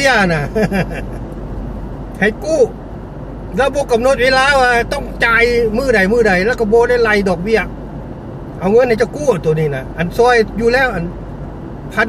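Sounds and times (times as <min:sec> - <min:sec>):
road rumble inside car: 0:00.0 - 0:12.0.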